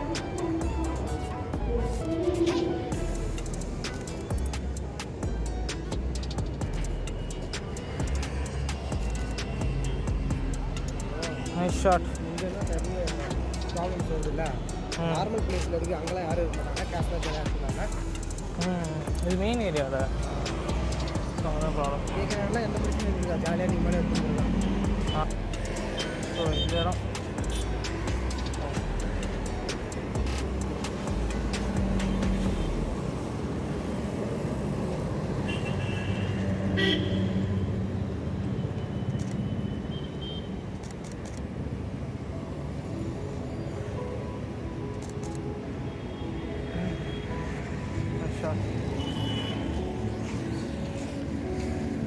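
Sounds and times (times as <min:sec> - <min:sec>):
traffic rumble: 0:00.0 - 0:52.0
vehicle horn toots: 0:35.4 - 0:37.5.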